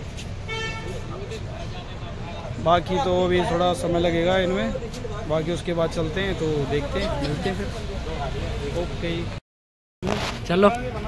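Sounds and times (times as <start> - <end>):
street traffic rumble: 0.0 - 9.4, 10.0 - 11.0
vehicle horn toot: 0.5 - 1.0.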